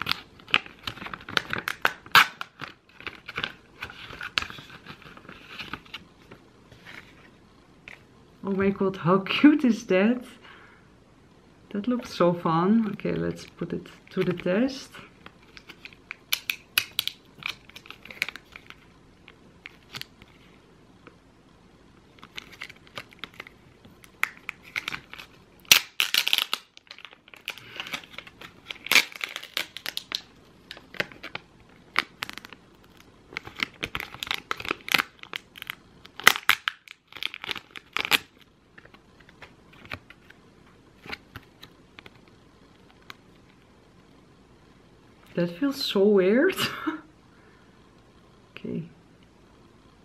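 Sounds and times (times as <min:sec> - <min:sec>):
plastic sachet crinkling: 0:00.0 - 0:06.4, 0:15.2 - 0:20.3, 0:22.1 - 0:40.4.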